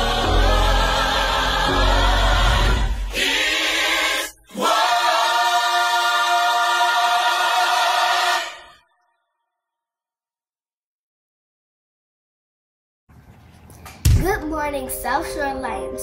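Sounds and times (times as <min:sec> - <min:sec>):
gospel choir singing: 0:00.0 - 0:08.9.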